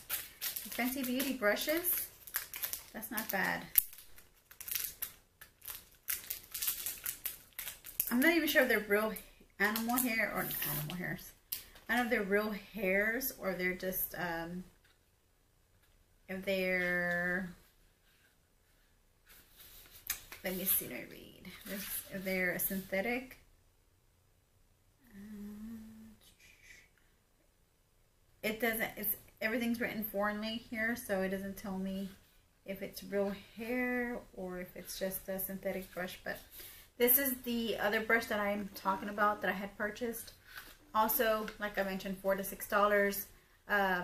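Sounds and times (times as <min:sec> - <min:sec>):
packaging rustling: 0:00.0 - 0:08.6
woman humming hmm: 0:25.0 - 0:26.2
short breathy sound: 0:25.0 - 0:27.0.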